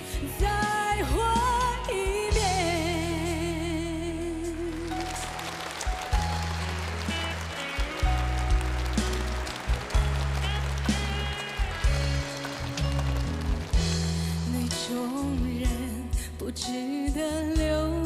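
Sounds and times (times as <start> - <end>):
live band playing pop ballad: 0.0 - 18.0
keyboard melody: 0.6 - 18.0.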